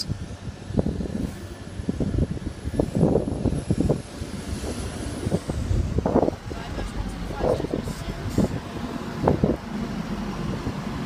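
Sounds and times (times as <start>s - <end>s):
diesel train engine rumble: 0.0s - 11.0s.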